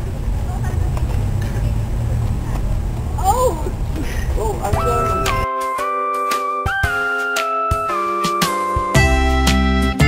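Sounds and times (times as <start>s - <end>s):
low rumble of outdoor noise: 0.0s - 5.5s.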